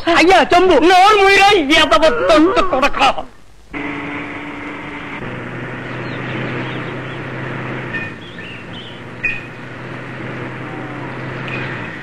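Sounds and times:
bus engine humming: 3.6 - 12.0.

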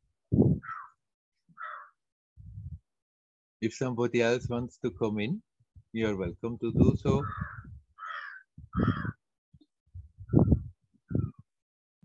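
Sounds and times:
crow cawing: 0.6 - 1.0, 1.6 - 2.0, 7.2 - 9.2.

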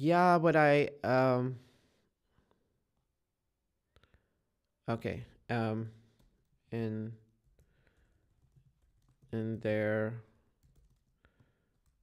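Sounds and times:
computer keyboard keystrokes: 7.5 - 9.4, 10.6 - 12.0.

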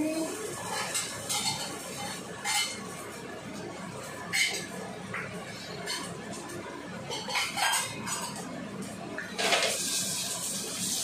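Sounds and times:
utensil clinking on dishware: 0.6 - 2.8.

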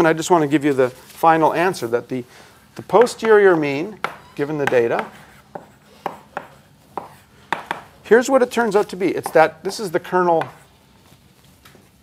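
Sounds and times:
chalk tapping on blackboard: 4.0 - 7.9, 8.8 - 10.7.

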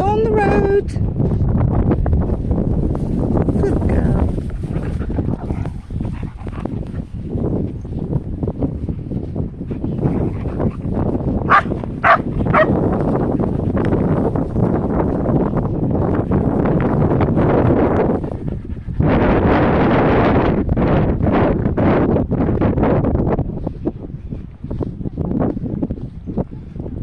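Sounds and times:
wind on microphone: 0.0 - 27.0
dog barking: 11.5 - 12.8.

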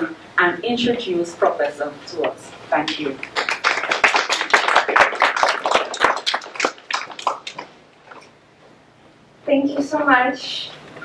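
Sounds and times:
small audience applauding: 3.2 - 7.7.

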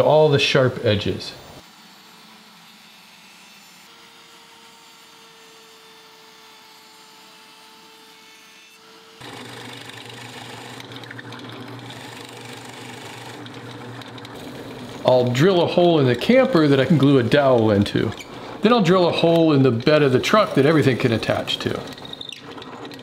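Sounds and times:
router cutting wood: 1.4 - 22.4
drill press boring wood: 1.6 - 23.0.

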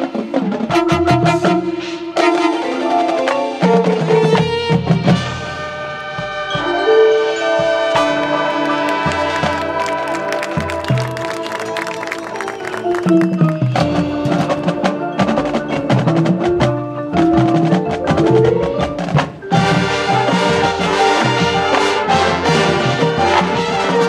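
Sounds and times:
brass and winds: 0.0 - 24.0
mallet keyboards: 0.0 - 24.0
clicking percussion: 6.2 - 24.0.

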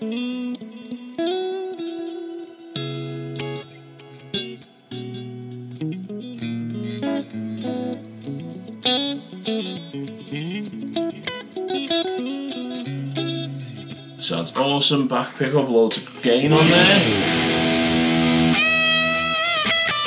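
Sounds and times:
electric guitar through amp: 16.0 - 20.0.

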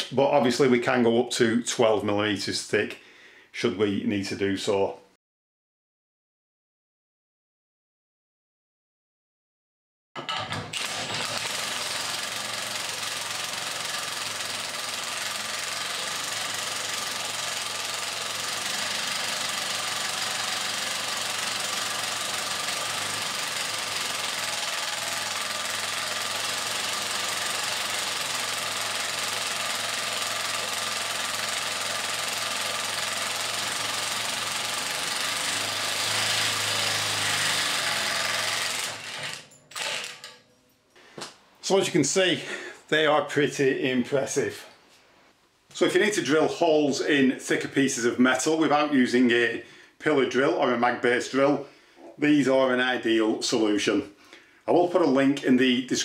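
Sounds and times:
impact wrench hammering: 11.4 - 40.3.

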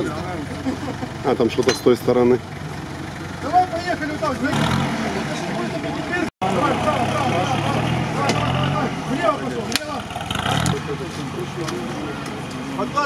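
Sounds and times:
people talking: 0.0 - 2.4, 3.4 - 13.0
vehicle engine running under load: 0.0 - 13.0.

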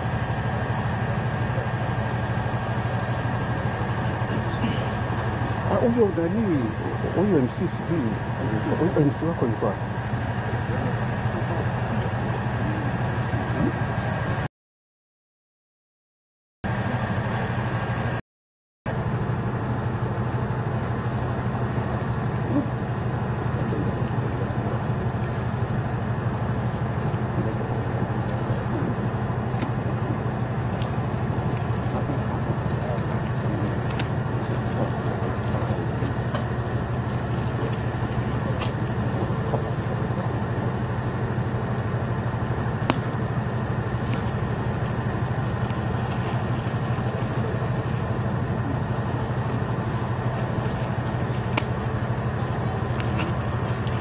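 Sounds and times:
low hum: 0.0 - 14.5, 18.9 - 54.0.

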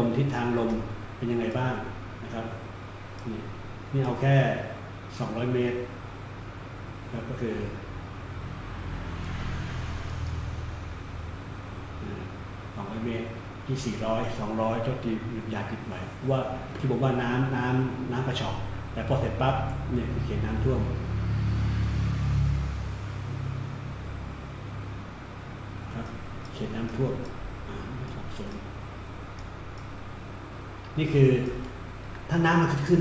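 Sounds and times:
low rumbling hum: 0.0 - 33.0
computer mouse clicks: 10.0 - 10.5, 26.0 - 27.4, 28.0 - 28.7, 29.3 - 30.0.

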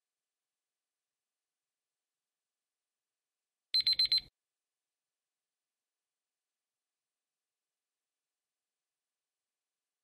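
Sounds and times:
high-pitched timer beeps: 3.8 - 4.3.

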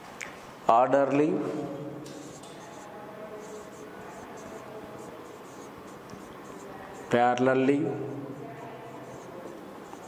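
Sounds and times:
marker scratching on whiteboard: 2.0 - 10.0.

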